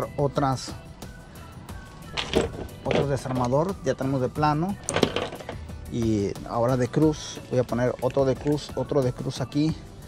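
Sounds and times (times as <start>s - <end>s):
hand tools clattering on a table: 2.1s - 3.6s, 4.9s - 5.6s.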